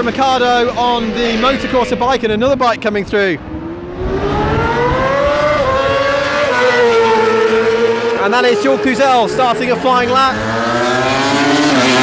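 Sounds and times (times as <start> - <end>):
racing motorcycle engine passing: 0.0 - 12.0.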